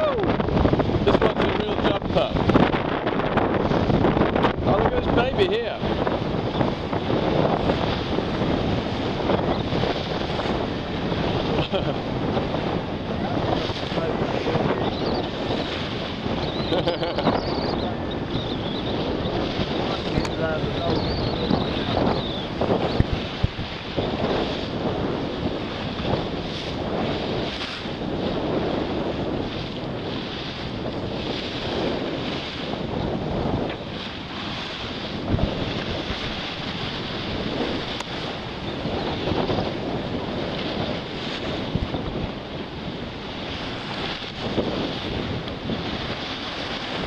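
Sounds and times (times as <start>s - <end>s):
water rushing and splashing: 0.0s - 47.0s
wind buffeting microphone: 0.0s - 47.0s.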